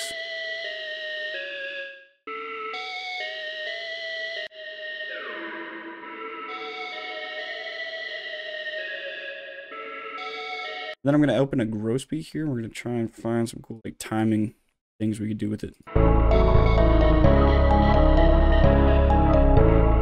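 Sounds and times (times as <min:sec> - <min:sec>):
synth flute melody: 0:15.9 - 0:20.0.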